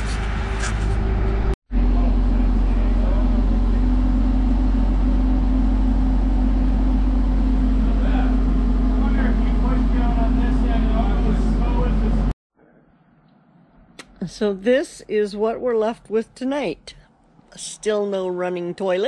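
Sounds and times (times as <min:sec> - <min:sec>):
diesel engine running steadily: 0:00.0 - 0:12.3.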